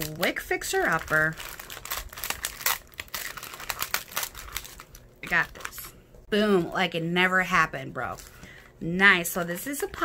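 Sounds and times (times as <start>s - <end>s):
plastic packet crinkling: 0.0s - 6.0s.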